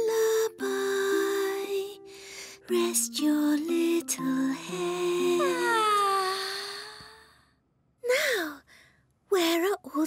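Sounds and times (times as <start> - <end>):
lullaby music: 0.0 - 7.5.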